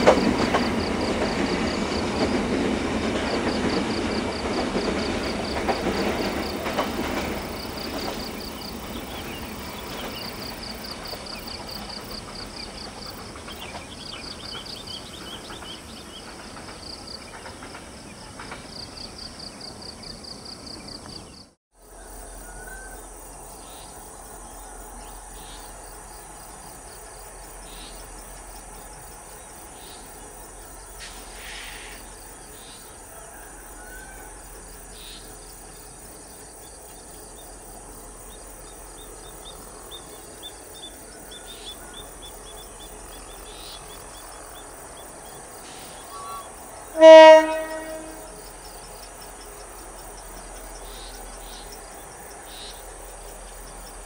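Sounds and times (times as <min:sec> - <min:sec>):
insects chirping: 0:00.0 - 0:54.0.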